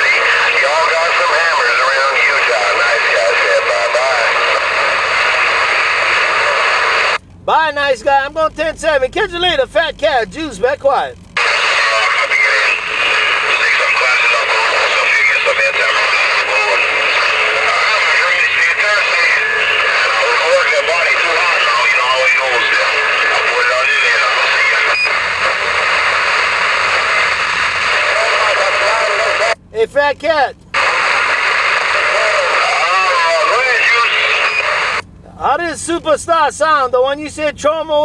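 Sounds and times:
faint garbled radio voice: 0.0s - 36.3s
radio static: 0.0s - 38.0s.

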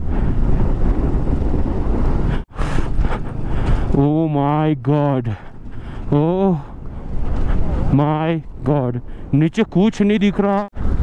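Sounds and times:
motorcycle engine: 0.0s - 4.6s
road noise: 0.0s - 11.0s
wind buffeting microphone: 0.0s - 11.0s.

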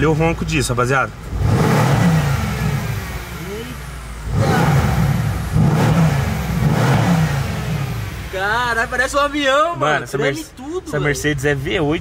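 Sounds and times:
car engine revving: 0.0s - 9.5s.

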